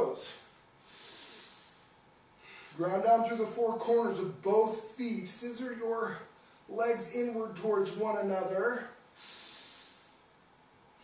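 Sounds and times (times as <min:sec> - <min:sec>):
person breathing out: 0:00.8 - 0:02.8, 0:09.2 - 0:10.3.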